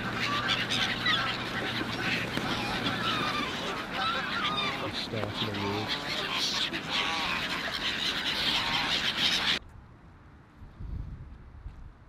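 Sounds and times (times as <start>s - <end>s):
geese honking: 0.0s - 9.6s
gulls calling: 0.0s - 9.6s.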